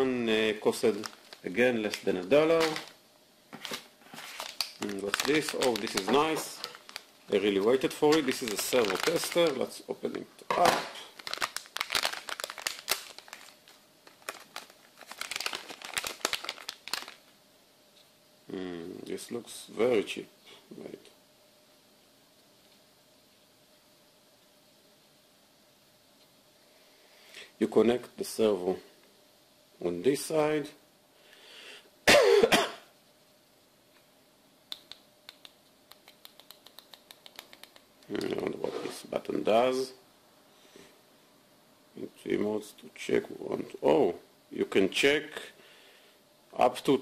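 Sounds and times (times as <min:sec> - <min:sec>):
person speaking: 0:00.0 - 0:03.0, 0:04.7 - 0:11.3, 0:36.0 - 0:40.0
plastic bag crinkling: 0:00.7 - 0:03.0, 0:03.6 - 0:09.8, 0:10.6 - 0:17.3.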